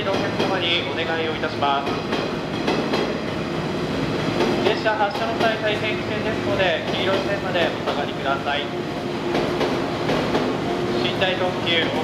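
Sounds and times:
wheels clicking over rail joints: 0.0 - 1.0, 1.8 - 3.2, 4.4 - 8.2
train cars rumbling: 0.0 - 12.0.

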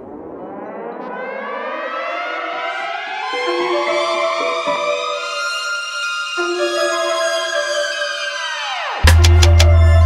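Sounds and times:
rising gliding pitches: 0.0 - 10.0.

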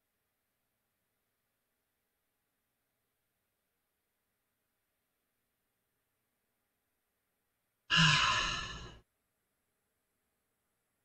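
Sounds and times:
man sighing: 7.9 - 9.0.

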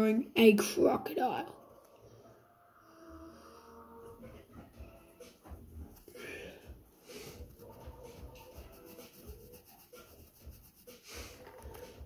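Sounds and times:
pencil scratching on paper: 7.1 - 12.0.

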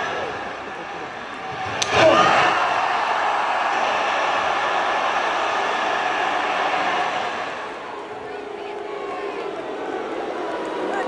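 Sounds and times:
crowd reacting loudly: 0.0 - 11.0.

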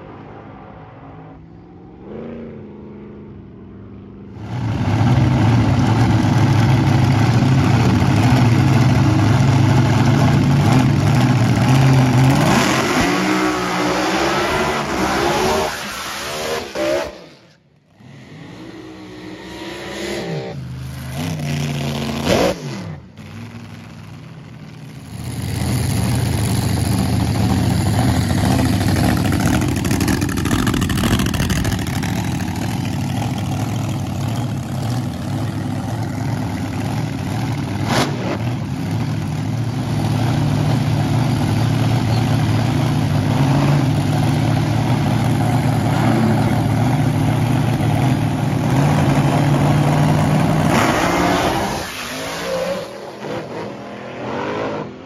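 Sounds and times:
drag racing car engines revving: 0.0 - 55.0
car burnout revving: 10.4 - 17.2, 43.1 - 55.0.

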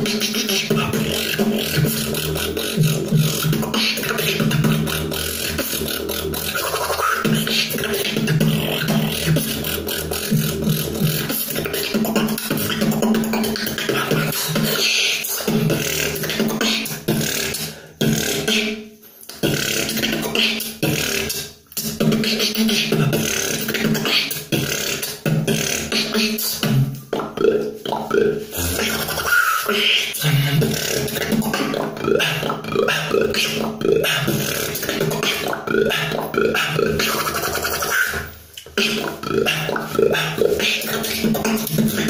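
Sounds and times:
hissing beatbox percussion: 0.0 - 42.0
hummed beatbox bass line: 0.0 - 42.0.

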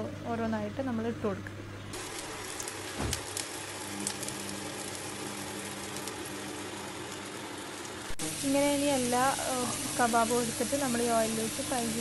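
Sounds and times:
meat sizzling in hot oil: 1.9 - 12.0.

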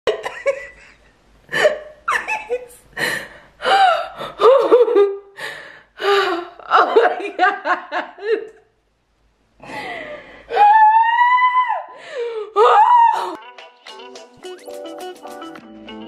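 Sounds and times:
woman laughing hard: 0.1 - 2.8, 3.6 - 5.2, 6.6 - 8.6
woman gasping for breath: 2.9 - 4.5, 5.4 - 6.5, 9.6 - 10.5, 11.9 - 12.6.

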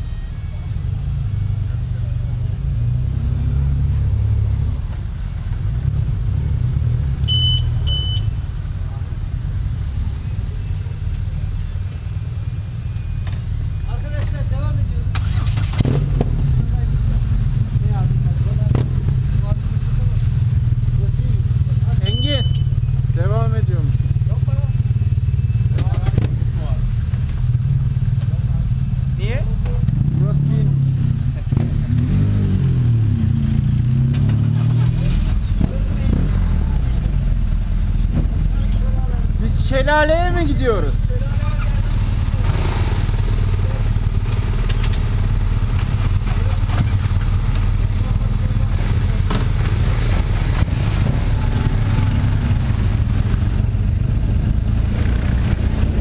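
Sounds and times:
motorcycle engines idling: 0.0 - 32.0, 32.6 - 56.0
motorcycles riding past: 22.7 - 56.0.

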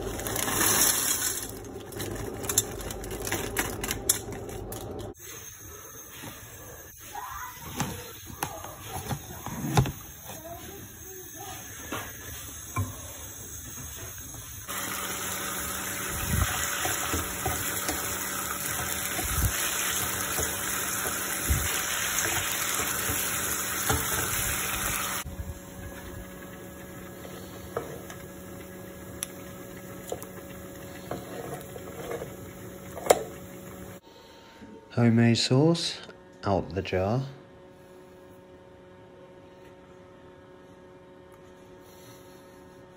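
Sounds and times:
bacon sizzling in a pan: 14.7 - 25.3.

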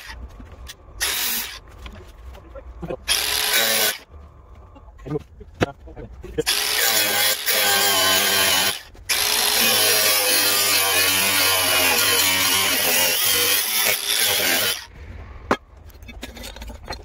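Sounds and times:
angle grinder cutting metal: 1.0 - 1.6, 3.1 - 4.1, 6.4 - 14.9.

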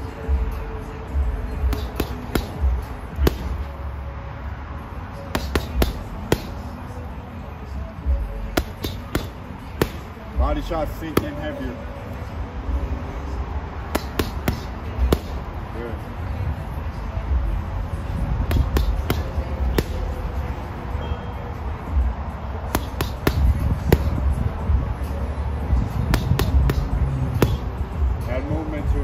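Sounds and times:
boxing gloves punching heavy bag: 1.6 - 3.6, 5.4 - 6.7, 8.5 - 10.5, 13.9 - 15.5, 18.4 - 20.2, 22.7 - 24.3, 26.0 - 27.7.

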